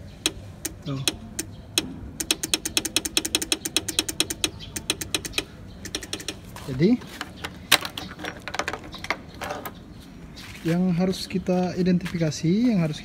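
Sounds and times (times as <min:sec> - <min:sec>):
horn relay clicking: 0:00.0 - 0:06.5.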